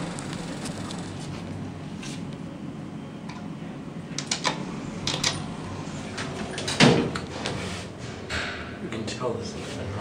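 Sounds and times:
elevator low hum: 0.0s - 10.0s.

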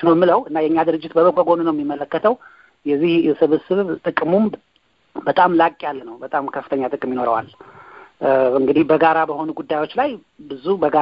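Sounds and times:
person talking: 0.0s - 4.6s, 5.2s - 11.0s.

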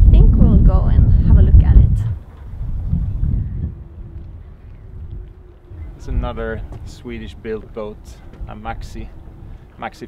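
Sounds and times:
faint steady hum: 0.0s - 10.0s
wind buffeting microphone: 0.0s - 10.0s.

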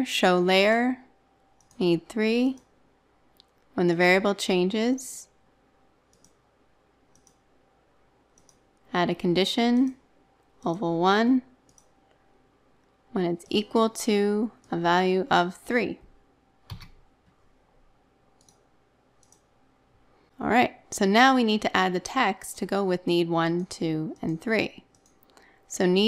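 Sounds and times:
computer mouse clicks: 1.6s - 1.8s, 6.1s - 6.4s, 7.1s - 7.4s, 8.3s - 8.8s, 11.6s - 12.2s, 16.7s - 17.4s, 18.4s - 19.5s, 23.6s - 25.4s.

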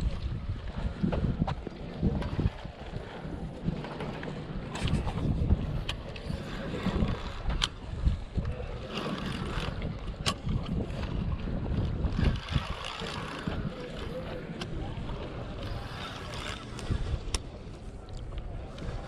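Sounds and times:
wind on microphone: 0.0s - 19.0s.

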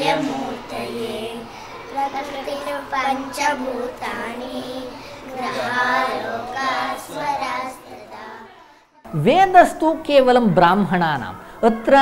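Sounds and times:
young girls singing together: 0.0s - 9.0s.

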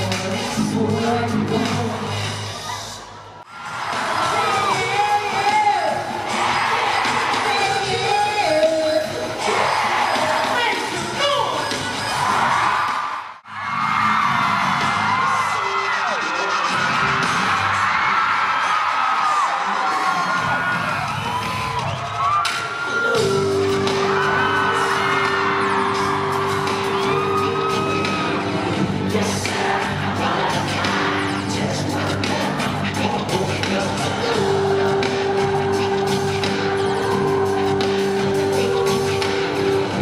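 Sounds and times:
song with pulsing bass: 0.0s - 12.7s, 22.5s - 40.0s
crowd screaming and cheering: 0.0s - 40.0s.

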